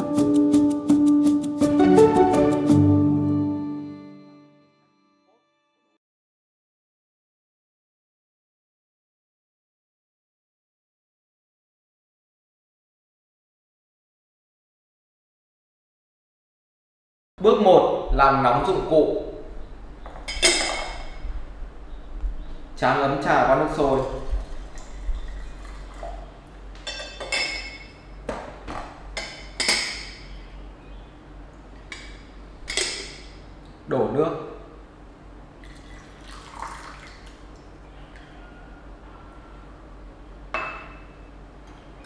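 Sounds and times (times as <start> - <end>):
water trickling into bowl: 23.8 - 26.6, 35.6 - 38.4
glass clinks: 26.9 - 28.0, 40.6 - 41.3.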